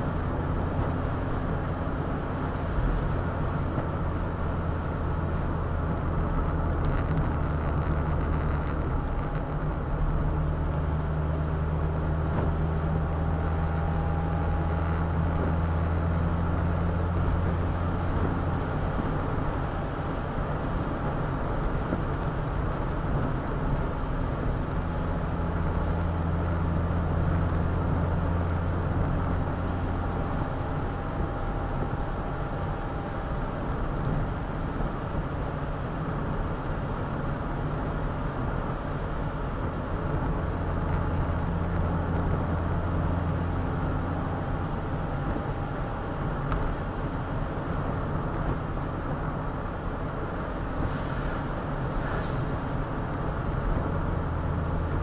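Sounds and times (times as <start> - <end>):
car engine drone: 0.0 - 55.0.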